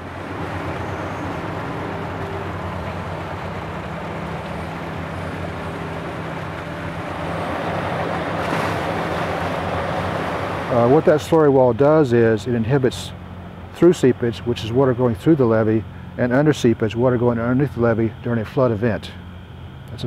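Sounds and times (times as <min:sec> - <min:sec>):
excavator diesel engine drone: 0:00.0 - 0:20.0.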